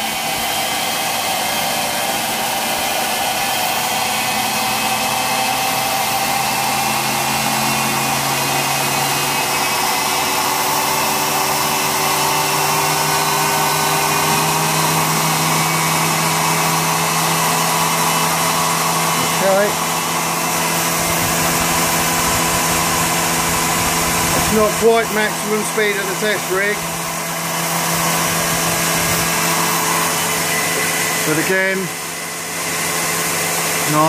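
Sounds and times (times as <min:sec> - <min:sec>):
high-speed machine whine: 0:00.0 - 0:34.0.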